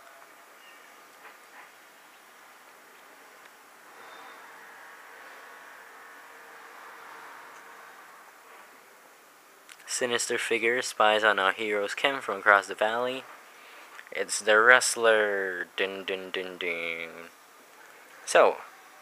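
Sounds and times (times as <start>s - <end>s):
faint background noise: 0.0s - 19.0s.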